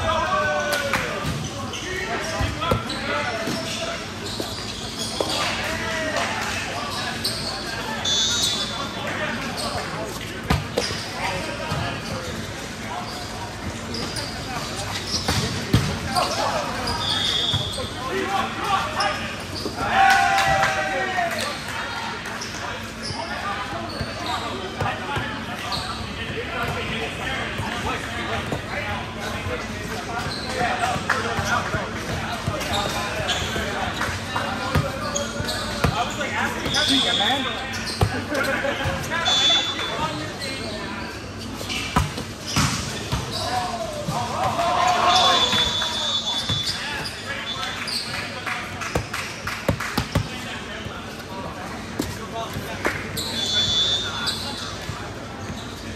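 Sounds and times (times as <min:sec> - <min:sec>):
players shouting and chatting: 0:00.0 - 0:55.9
balls bouncing on court floor: 0:09.5 - 0:11.1, 0:15.2 - 0:16.3, 0:30.2 - 0:37.1, 0:41.8 - 0:44.6, 0:47.9 - 0:50.4
short high squeaks: 0:53.2 - 0:54.8.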